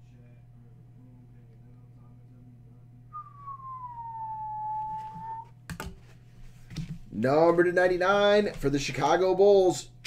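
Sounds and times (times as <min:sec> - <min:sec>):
person whistling gliding note: 0:03.1 - 0:05.5.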